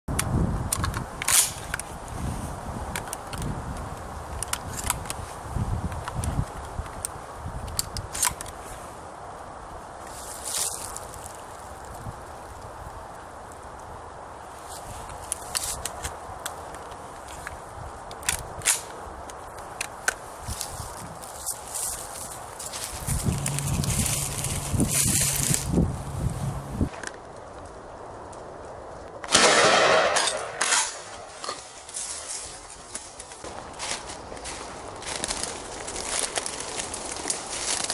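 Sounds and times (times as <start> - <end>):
rustling in dry leaves: 1.4 - 7.6, 8.5 - 29.1, 31.0 - 37.9
steady low hum: 22.8 - 26.9.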